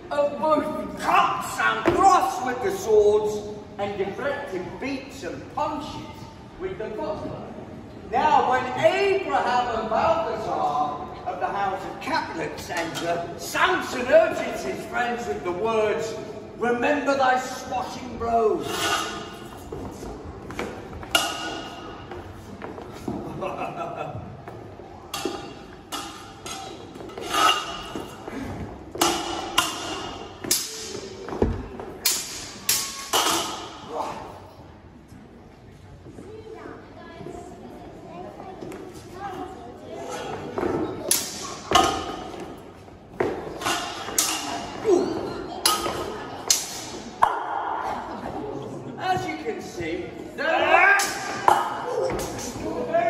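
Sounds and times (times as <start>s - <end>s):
steel swords clashing: 18.6s - 19.7s, 21.1s - 22.0s, 25.1s - 28.3s, 29.0s - 31.2s, 32.0s - 33.9s, 41.1s - 42.4s, 43.6s - 44.9s, 45.6s - 47.0s.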